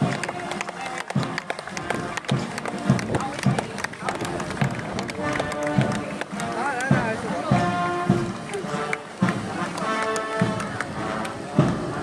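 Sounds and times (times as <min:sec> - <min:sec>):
band music: 0:00.0 - 0:12.0
crowd voices: 0:00.0 - 0:12.0
drum beating: 0:00.0 - 0:12.0.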